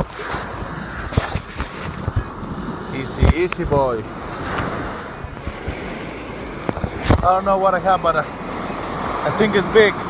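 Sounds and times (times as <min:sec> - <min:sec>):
small waves washing on shore: 0:00.0 - 0:10.0.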